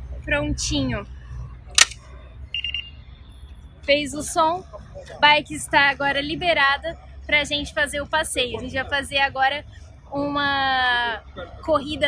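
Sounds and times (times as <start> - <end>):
short high electronic beep: 2.5 - 3.0.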